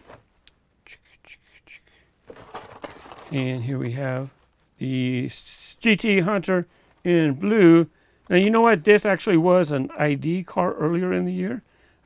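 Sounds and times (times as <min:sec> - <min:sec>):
plastic blister packs rustling: 0:02.3 - 0:03.7.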